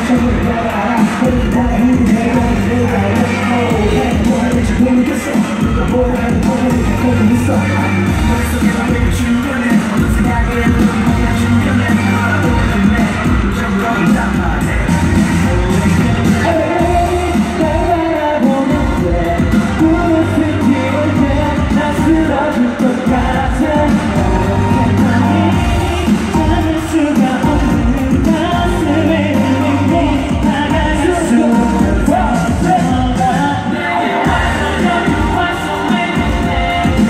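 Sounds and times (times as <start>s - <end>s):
group singing live: 0.0s - 37.0s
pop backing track with beat: 0.0s - 37.0s.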